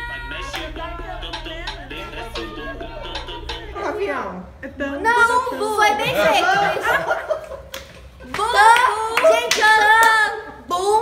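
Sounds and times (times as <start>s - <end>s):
girls singing: 0.0s - 7.1s, 8.3s - 11.0s
hand claps: 7.7s - 10.2s.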